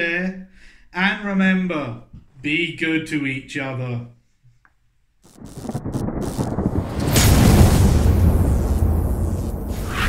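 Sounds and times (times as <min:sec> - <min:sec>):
rain-like hiss: 0:05.2 - 0:10.0
rumbling thunder: 0:05.4 - 0:10.0.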